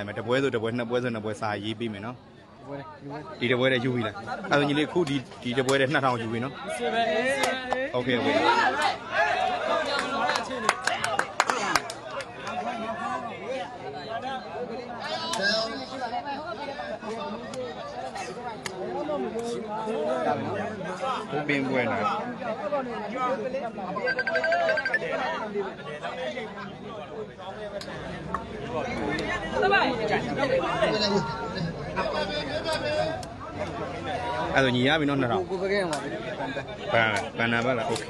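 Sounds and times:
overlapping chatter: 0:00.0 - 0:38.0
people talking over one another: 0:00.0 - 0:38.0.

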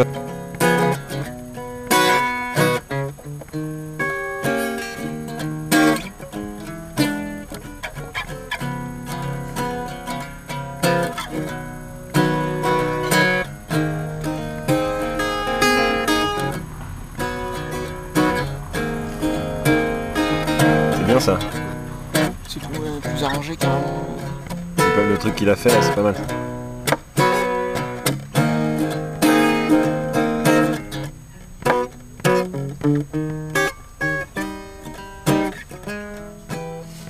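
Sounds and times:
acoustic guitar picking: 0:00.0 - 0:37.0.

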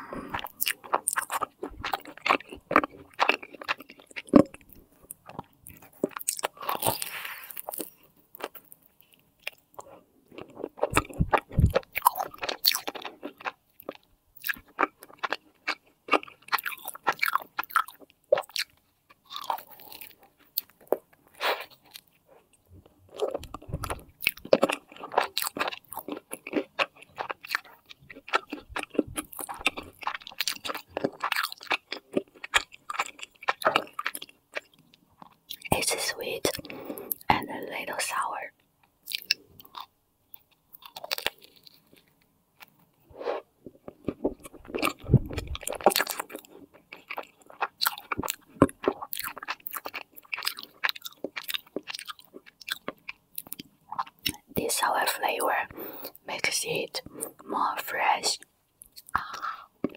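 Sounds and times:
chewing and biting pastry: 0:00.0 - 0:37.6, 0:38.6 - 0:59.9
wet mouth sounds: 0:10.4 - 0:13.6, 0:23.2 - 0:38.4, 0:43.1 - 0:59.9.

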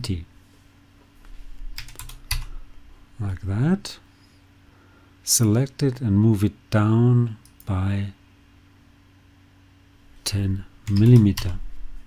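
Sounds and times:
keyboard keystrokes: 0:01.8 - 0:02.5.

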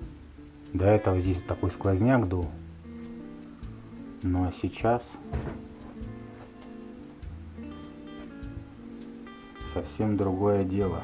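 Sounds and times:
guitar background music: 0:00.0 - 0:11.0.

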